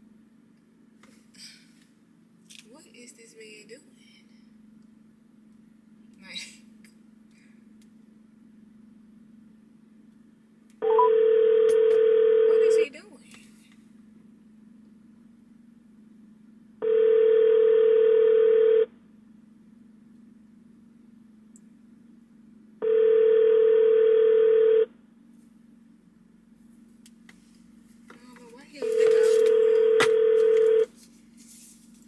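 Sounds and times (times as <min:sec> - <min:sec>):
telephone ringback tone: 0:10.8 - 0:12.8, 0:16.8 - 0:18.9, 0:22.8 - 0:24.9, 0:28.8 - 0:30.9.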